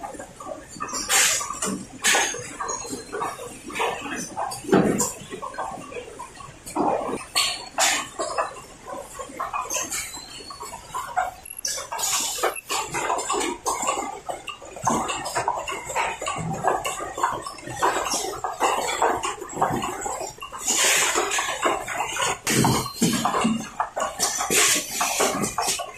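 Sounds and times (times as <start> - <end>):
machine clatter and clicks: 0.0 - 25.9.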